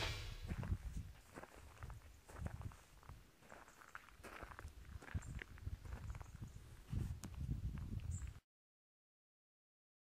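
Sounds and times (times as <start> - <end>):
faint footsteps: 0.0 - 8.4.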